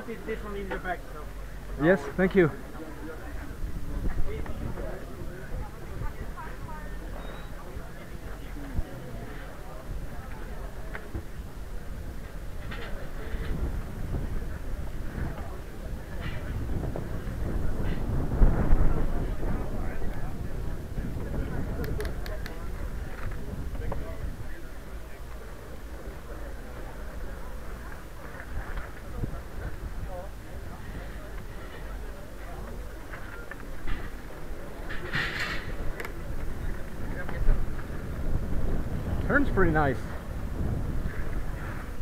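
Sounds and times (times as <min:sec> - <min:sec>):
wheels rumbling on brick paving: 0:00.1 - 0:42.0
wind on microphone: 0:03.4 - 0:24.7, 0:33.8 - 0:42.0.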